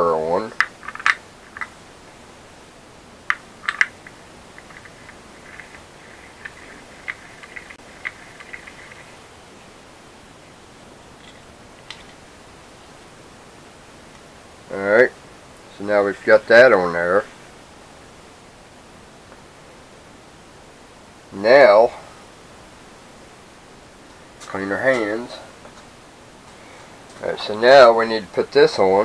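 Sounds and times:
parts clicking together: 0:00.5 - 0:01.8, 0:03.3 - 0:09.1.

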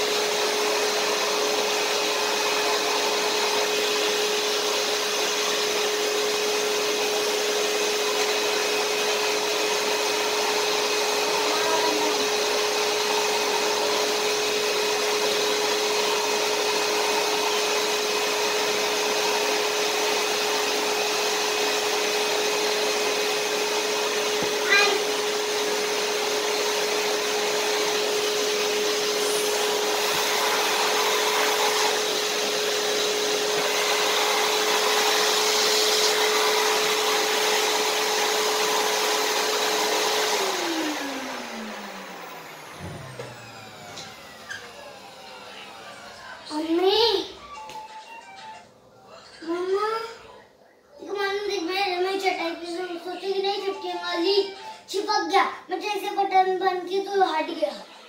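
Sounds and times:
vacuum cleaner running: 0:00.0 - 0:50.4.

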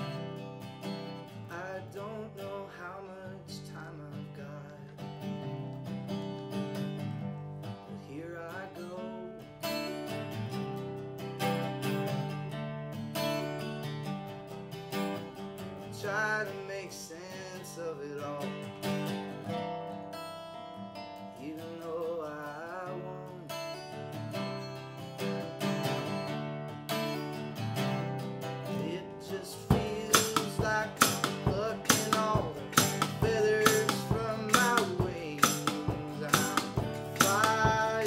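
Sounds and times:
acoustic guitar strumming: 0:00.0 - 0:38.0.

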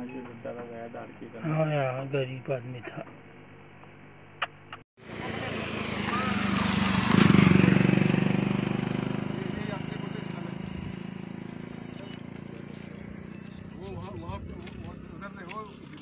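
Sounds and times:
vehicle passing by: 0:05.0 - 0:16.0.

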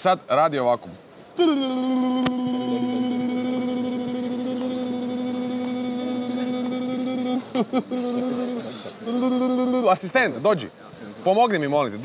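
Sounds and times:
man singing a long note: 0:01.4 - 0:09.9.

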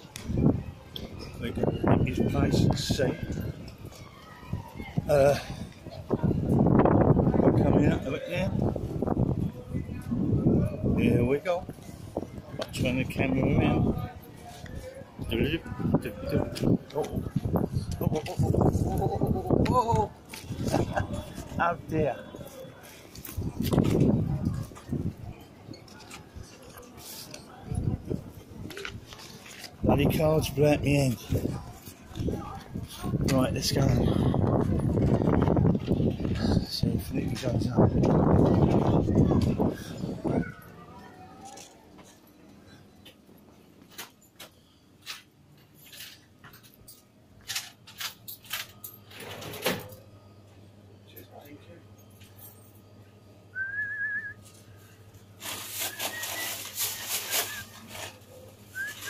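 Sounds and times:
wind buffeting microphone: 0:00.1 - 0:14.1, 0:15.2 - 0:21.4, 0:23.3 - 0:25.4, 0:29.8 - 0:40.6
loud rustle: 0:55.4 - 0:59.0.

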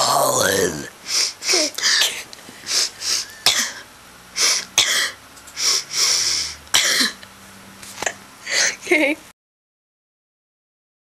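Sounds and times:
girls sniffling: 0:01.1 - 0:07.2
girls coughing: 0:03.2 - 0:03.9, 0:04.8 - 0:05.2, 0:06.7 - 0:07.2.

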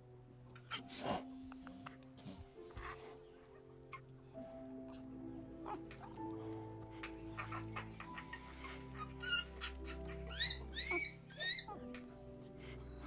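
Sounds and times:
quiet orchestral film score: 0:00.0 - 0:13.0
infant ape crying: 0:00.6 - 0:13.0.

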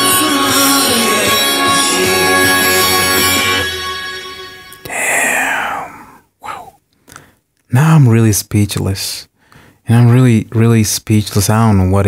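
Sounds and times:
faint breathy sound: 0:04.8 - 0:07.4
man sighing: 0:04.8 - 0:07.4.

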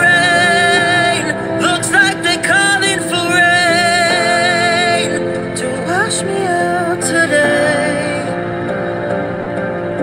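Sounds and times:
man singing a slow ballad: 0:00.0 - 0:08.4
backing track music: 0:00.0 - 0:10.0.

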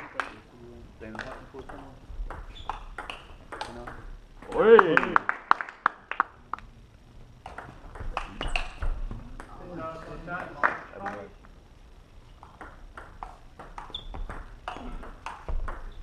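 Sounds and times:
table tennis ball clicking: 0:01.1 - 0:04.6, 0:07.4 - 0:09.5, 0:12.4 - 0:16.0.

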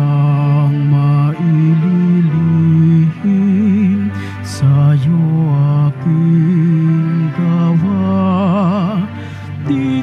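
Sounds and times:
man singing a slow hymn: 0:00.0 - 0:10.0.

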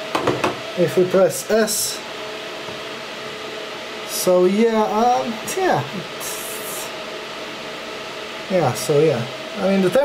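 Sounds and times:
cooling fans rushing: 0:00.0 - 0:10.0.

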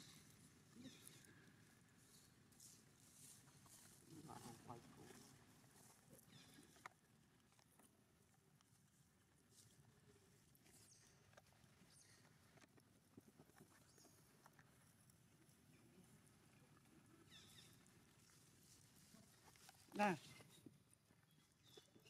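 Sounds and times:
person speaking: 0:19.9 - 0:20.2.

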